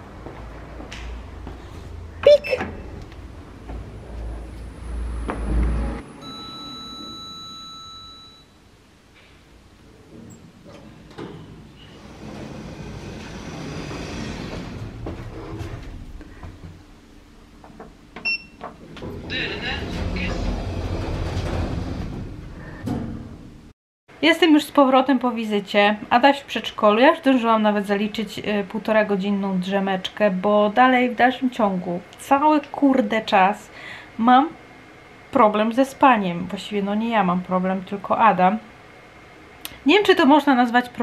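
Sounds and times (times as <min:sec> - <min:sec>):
elevator low rumble: 0:00.0 - 0:07.5, 0:09.6 - 0:23.7
lift low rumble: 0:19.0 - 0:22.8.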